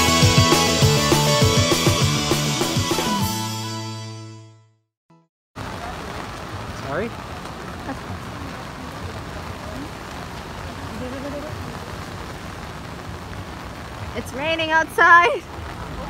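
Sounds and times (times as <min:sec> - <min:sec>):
heavy rain on umbrellas and pavement: 0:05.6 - 0:16.0.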